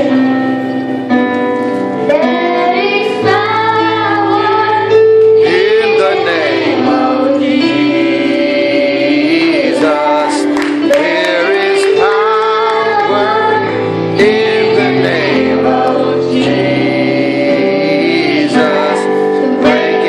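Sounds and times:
children's choir singing: 0.0s - 20.0s
instrumental accompaniment: 0.0s - 20.0s
girl singing into microphone: 1.9s - 10.5s, 11.7s - 13.9s, 18.4s - 20.0s.

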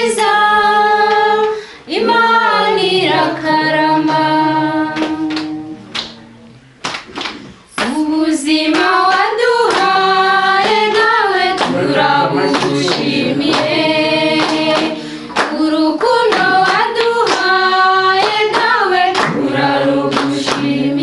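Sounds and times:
group of voices singing: 0.0s - 6.8s, 7.4s - 21.0s
hands clapping: 3.0s - 21.0s.

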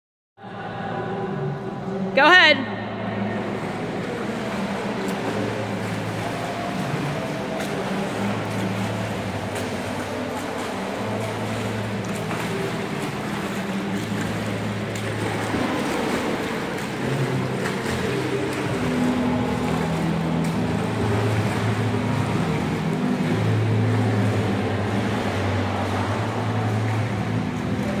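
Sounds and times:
low hum: 0.4s - 28.0s
swimmer splashing in pool: 3.4s - 28.0s.

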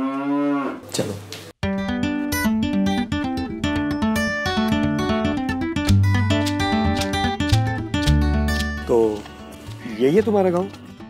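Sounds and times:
cow mooing: 0.0s - 0.9s
acoustic guitar strumming: 1.6s - 11.0s
person speaking: 8.6s - 10.8s.

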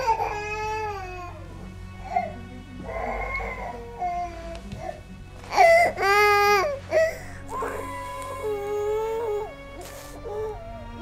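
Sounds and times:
baby crying: 0.0s - 1.4s, 2.0s - 11.0s
low musical drone: 0.0s - 11.0s.

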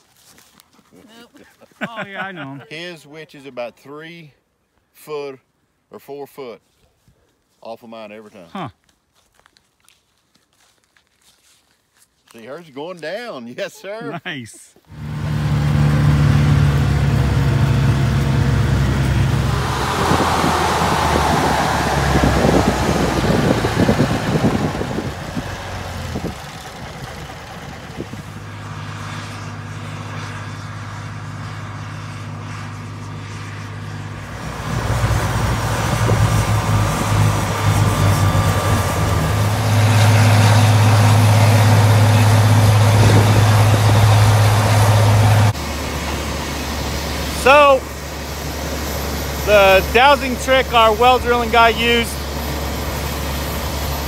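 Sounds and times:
rushing noise: 14.9s - 28.6s, 34.1s - 54.0s
diesel engine running: 14.9s - 54.0s.

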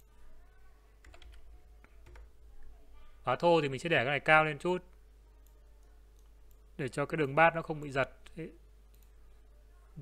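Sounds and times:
man speaking: 3.2s - 5.0s, 6.8s - 8.6s
computer mouse clicks: 8.2s - 9.2s.

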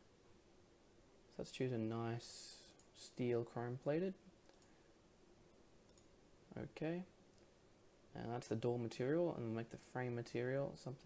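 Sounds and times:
computer mouse clicks: 4.4s - 4.8s, 5.9s - 6.2s.

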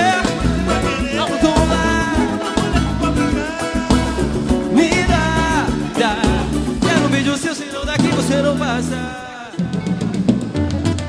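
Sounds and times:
drum kit fill: 0.0s - 11.0s.

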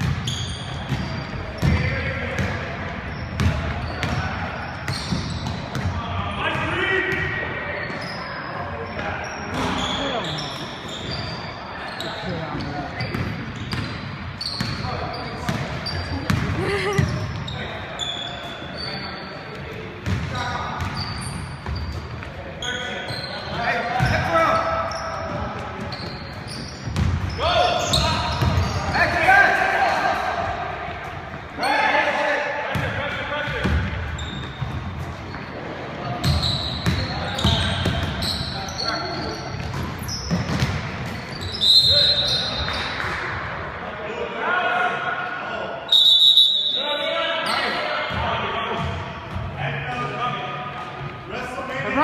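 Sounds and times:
basketball bouncing: 0.0s - 2.6s, 3.3s - 4.3s, 15.4s - 17.4s, 20.0s - 21.0s, 26.8s - 27.3s, 28.0s - 28.7s, 33.6s - 35.0s, 39.6s - 41.2s
sneakers squeaking: 0.0s - 43.6s, 45.8s - 52.0s
players calling out: 0.3s - 22.0s, 22.6s - 34.6s
basketball bouncing on wood floor: 15.5s - 17.3s.

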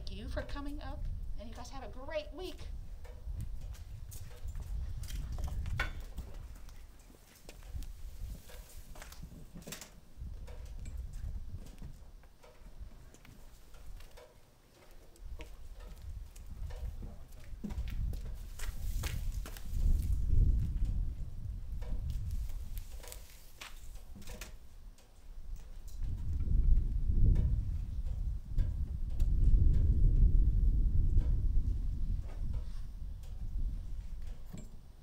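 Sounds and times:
hard footsteps: 2.8s - 24.6s
footsteps on hard pavement: 11.6s - 20.8s.

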